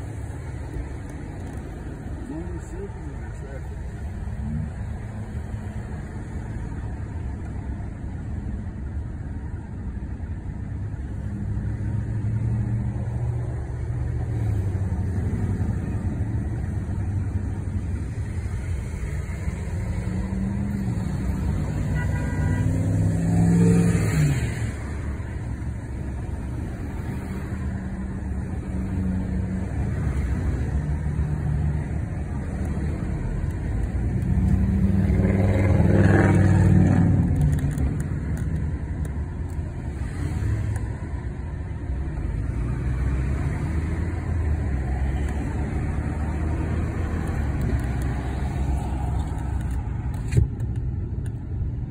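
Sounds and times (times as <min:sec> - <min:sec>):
road and engine noise in car: 0:00.0 - 0:51.9
vehicles passing close by: 0:00.0 - 0:51.9.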